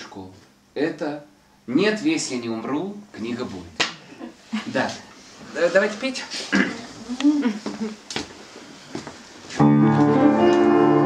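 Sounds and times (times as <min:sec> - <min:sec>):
upright piano chords: 0:09.6 - 0:11.0.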